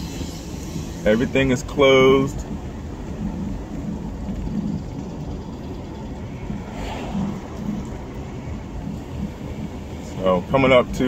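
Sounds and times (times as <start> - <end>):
car driving on city street: 0.0 - 11.0.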